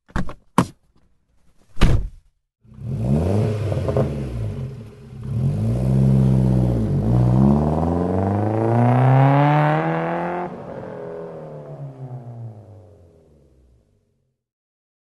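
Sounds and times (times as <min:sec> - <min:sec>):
car engine starting and revving: 0:02.6 - 0:13.9.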